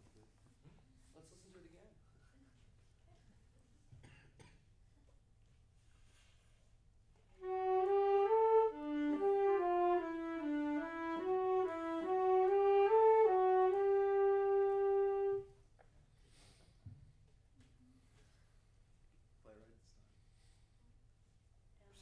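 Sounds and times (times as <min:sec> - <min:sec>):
two wind instruments playing: 0:07.3 - 0:15.6.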